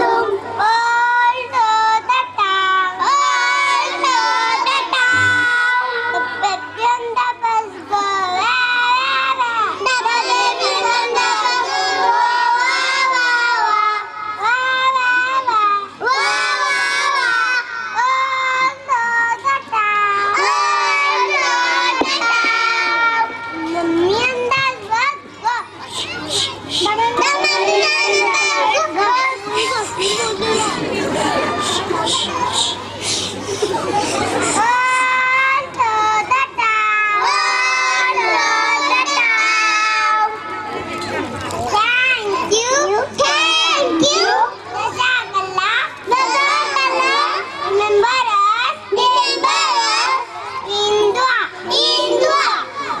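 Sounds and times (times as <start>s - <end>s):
children's voices on microphone: 0.0s - 53.0s.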